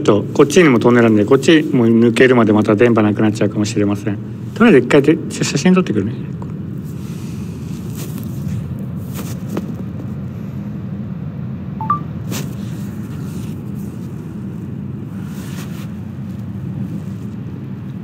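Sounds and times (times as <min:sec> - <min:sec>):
two-note rising electronic beep: 0:11.8 - 0:12.1.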